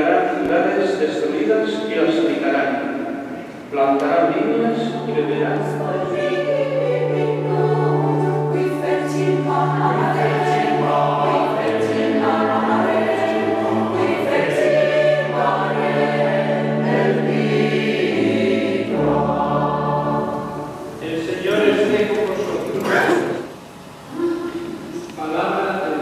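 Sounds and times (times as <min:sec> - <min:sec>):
mixed choir singing: 0:04.2 - 0:23.4.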